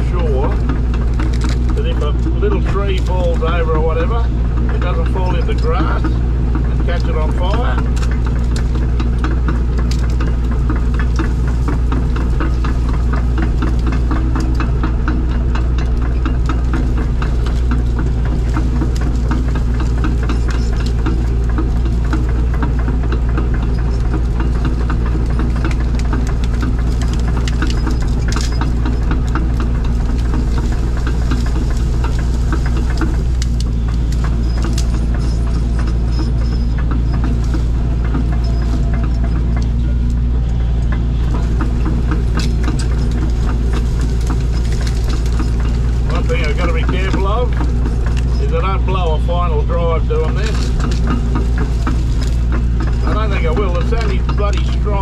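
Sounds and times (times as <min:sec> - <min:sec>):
diesel engine running under load: 0:00.0 - 0:55.0
machine clicks and rattles: 0:00.0 - 0:55.0.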